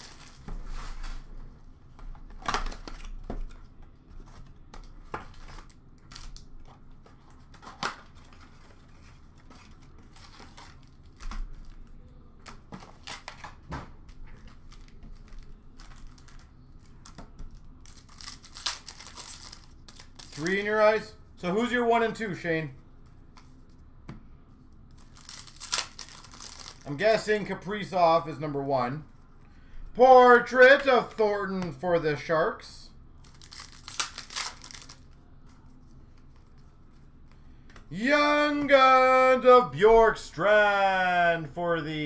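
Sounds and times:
packaging crinkling: 17.9s - 20.4s, 25.0s - 26.8s, 33.2s - 35.1s.

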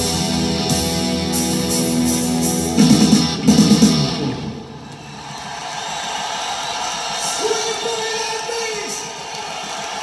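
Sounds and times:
concert audience noise: 0.0s - 10.0s.

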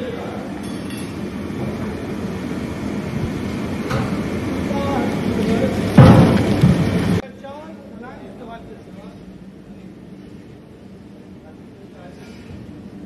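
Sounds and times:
gas burner roaring: 0.0s - 7.3s.

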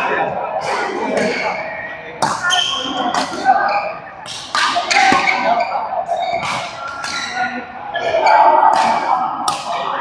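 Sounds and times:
badminton rackets hitting shuttlecock: 4.2s - 5.6s, 6.3s - 7.4s, 8.7s - 9.8s.

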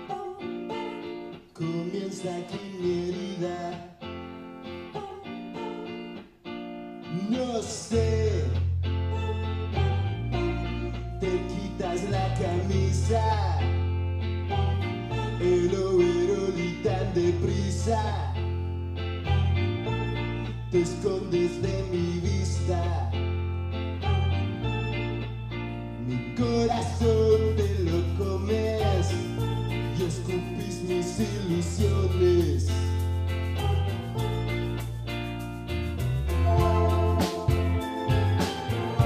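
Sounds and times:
electric guitars: 0.0s - 39.0s
bass guitar: 7.0s - 39.0s
cymbals: 36.2s - 39.0s
drums: 36.5s - 39.0s.

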